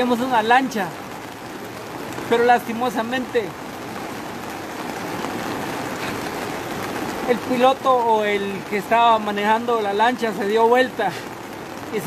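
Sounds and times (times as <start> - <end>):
steady rain: 0.0 - 12.0.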